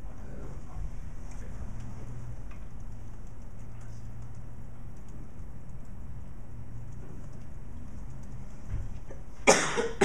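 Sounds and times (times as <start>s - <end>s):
faint room noise: 0.0s - 10.0s
person coughing: 9.4s - 10.0s.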